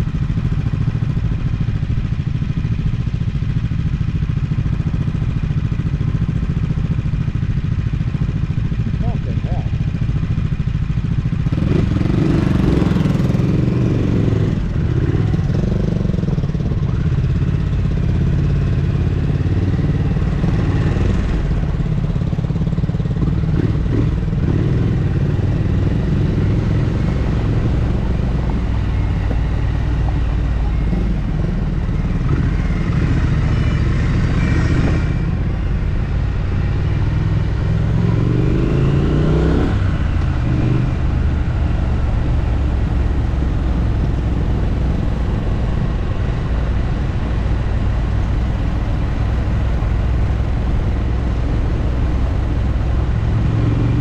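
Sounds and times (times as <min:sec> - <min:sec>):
motorcycle engine: 0:00.0 - 0:54.0.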